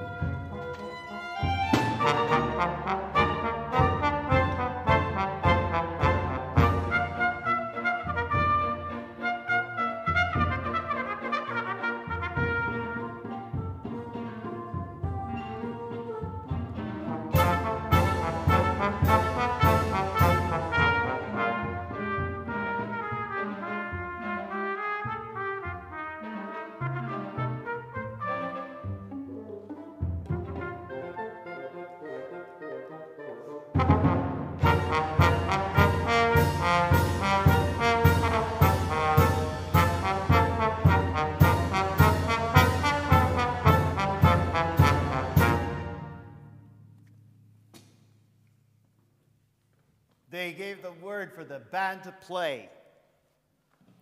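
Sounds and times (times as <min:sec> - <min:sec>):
chamber ensemble playing: 0:00.0 - 0:46.4.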